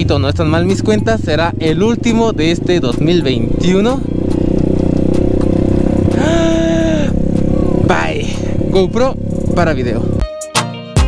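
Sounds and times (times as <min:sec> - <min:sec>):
motorcycle engine running: 0:00.0 - 0:10.2
rising tone: 0:03.6 - 0:10.2.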